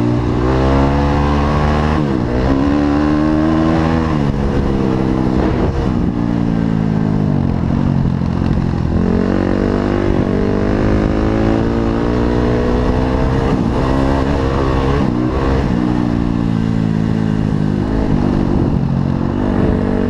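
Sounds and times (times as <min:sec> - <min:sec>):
motorcycle engine revving: 0:00.0 - 0:20.0.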